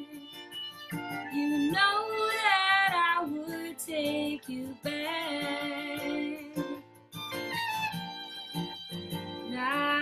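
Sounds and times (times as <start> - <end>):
acoustic guitar: 0.0 - 10.0
violin: 0.0 - 10.0
woman singing folk ballad: 1.3 - 6.8, 9.4 - 10.0.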